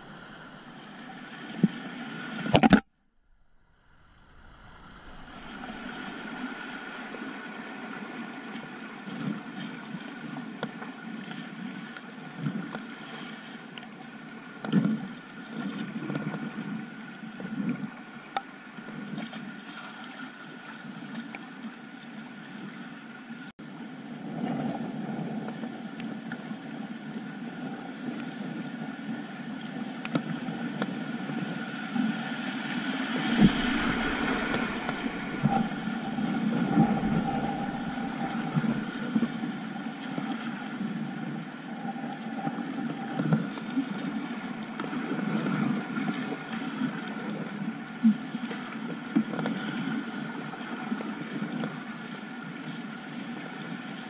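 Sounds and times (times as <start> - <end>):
low rumble: 0.0 - 2.0, 2.9 - 8.4, 31.4 - 41.4
water rushing and splashing: 0.0 - 17.2, 28.0 - 54.0
paddle strokes splashing: 3.7 - 16.8, 29.1 - 51.3.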